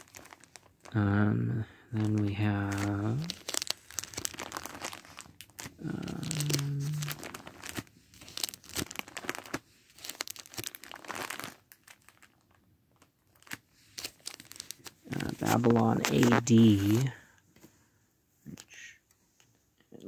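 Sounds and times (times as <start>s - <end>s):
plastic crinkling: 0.0s - 17.3s
plastic disc cases handled: 13.4s - 17.7s.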